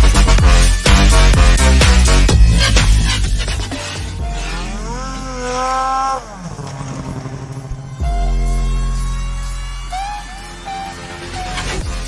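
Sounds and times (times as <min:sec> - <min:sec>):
electronic music: 0:00.0 - 0:12.0
snowmobile engine revving: 0:00.6 - 0:12.0.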